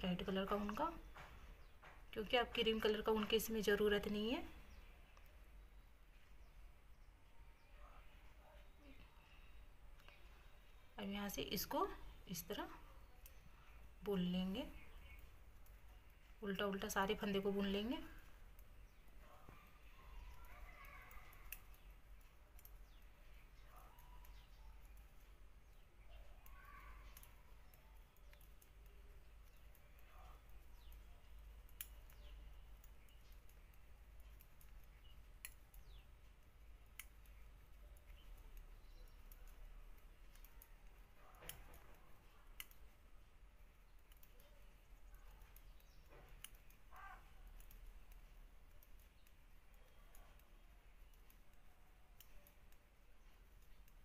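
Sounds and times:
knitting needles clicking: 0.0 - 7.0, 8.8 - 54.0.

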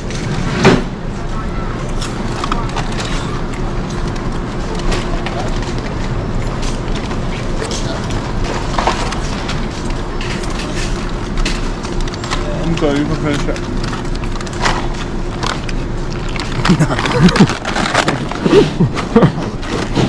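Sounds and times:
constant hum: 0.0 - 20.0
traffic rumble: 0.0 - 20.0
faint voices: 0.8 - 13.8.

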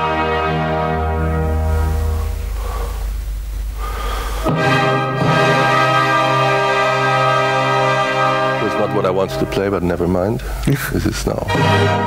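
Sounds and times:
orchestral chords over speakers: 0.0 - 12.0.

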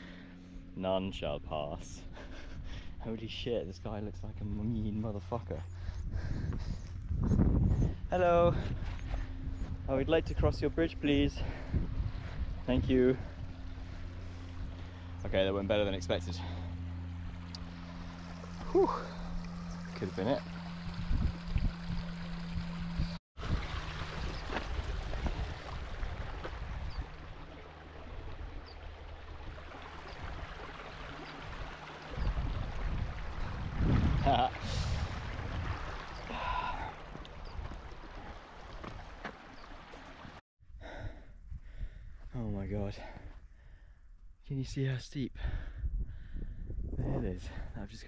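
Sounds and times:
low microphone rumble: 0.0 - 39.2
stream trickling: 8.3 - 40.4
heavy breathing and gasps: 36.2 - 37.0.

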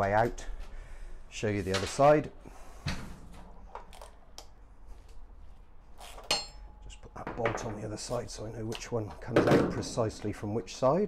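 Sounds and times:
ringing metallic clink: 6.3 - 6.8.

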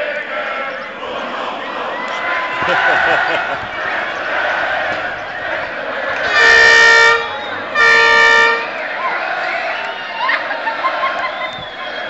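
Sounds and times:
crowd hubbub and voices: 0.0 - 12.0
loud horn blasts: 6.2 - 8.9.

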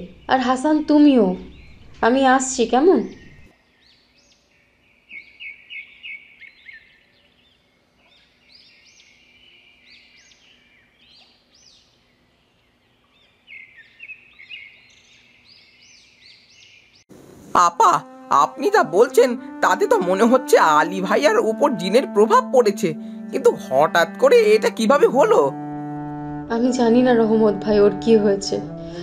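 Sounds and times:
songbirds chirping: 0.0 - 27.5.

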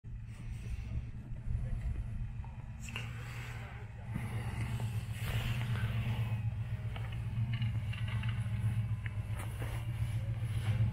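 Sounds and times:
distant engine rumbling: 0.1 - 10.9.

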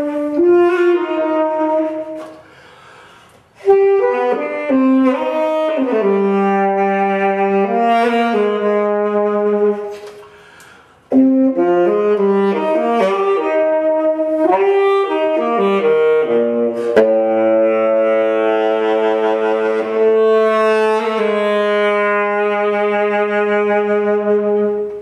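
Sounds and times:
tenor saxophone playing jazz: 0.0 - 25.0.

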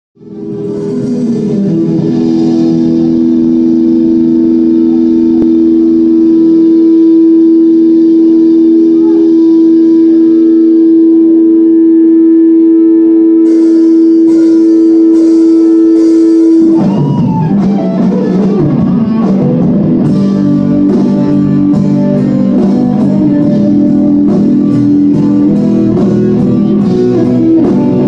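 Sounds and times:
band playing: 0.2 - 28.0
electric guitar sustained note: 0.2 - 28.0.

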